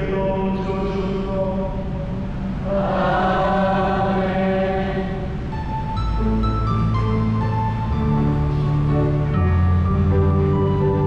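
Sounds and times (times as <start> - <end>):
hymn sung in chant-like melody: 0.0 - 5.6
low sustained drone: 0.0 - 11.0.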